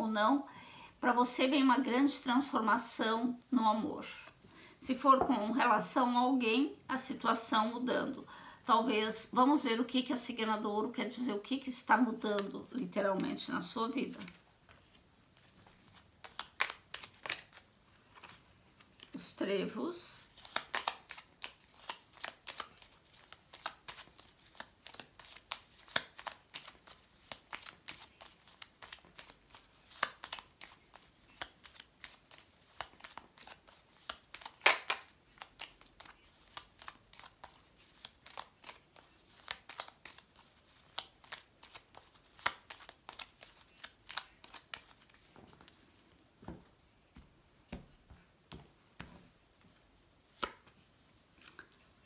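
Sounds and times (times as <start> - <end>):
cards being shuffled: 14.0 - 19.2, 20.2 - 46.6, 47.2 - 51.8.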